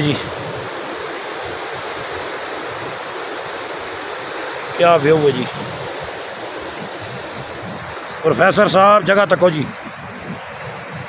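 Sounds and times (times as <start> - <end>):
river rushing over rapids: 0.0 - 11.0.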